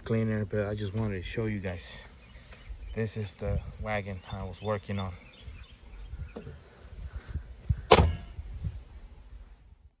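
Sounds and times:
loud sharp bang: 7.9 - 8.4.

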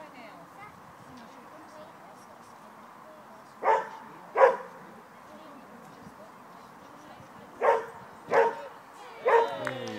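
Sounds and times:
dog barking: 3.6 - 4.8, 7.6 - 9.6.

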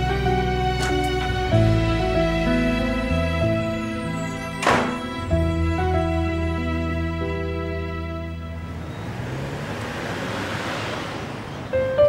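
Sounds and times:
car rushing past: 8.6 - 12.0.

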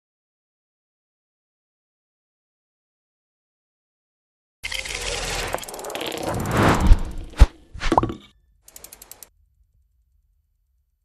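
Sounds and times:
whoosh: 5.4 - 8.0
faint rapid ticking: 8.7 - 9.3.

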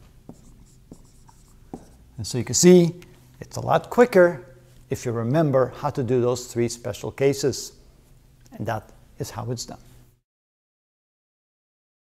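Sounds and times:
marker tapping and stroking on whiteboard: 0.0 - 2.0.

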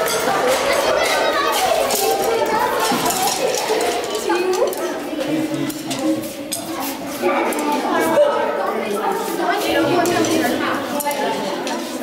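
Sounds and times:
wooden sticks clicking on stone floor: 0.0 - 8.0, 10.0 - 12.0
children talking: 0.0 - 12.0.

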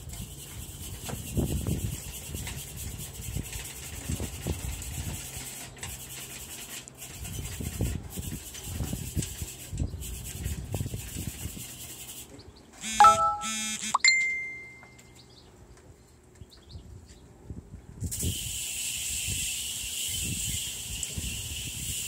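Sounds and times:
short loud pitched calls: 12.8 - 14.1
clear ringing tone: 12.8 - 15.1.

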